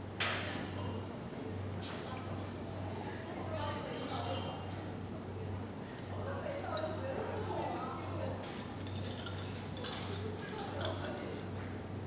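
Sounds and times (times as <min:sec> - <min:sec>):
ice clinking in cocktail shaker: 0:08.4 - 0:11.5.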